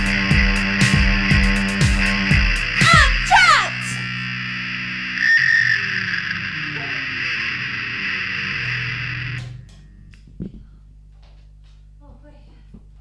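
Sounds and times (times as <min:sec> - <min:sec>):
distorted electric guitar drone: 0:00.0 - 0:10.3.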